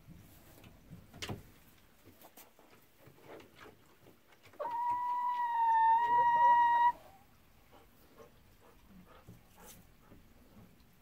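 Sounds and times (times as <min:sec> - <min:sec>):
animal high whining call: 0:04.6 - 0:07.1.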